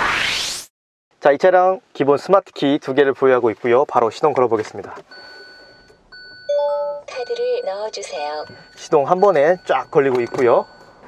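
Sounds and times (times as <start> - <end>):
car welcome chime melody: 5.1 - 11.0.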